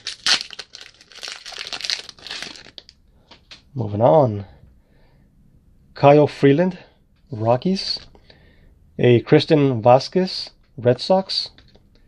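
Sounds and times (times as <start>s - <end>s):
foil wrapper crinkling: 0.0s - 2.9s.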